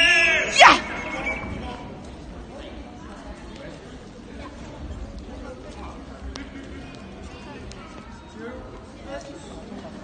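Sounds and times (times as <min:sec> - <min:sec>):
faint spectator chatter: 0:00.0 - 0:10.0.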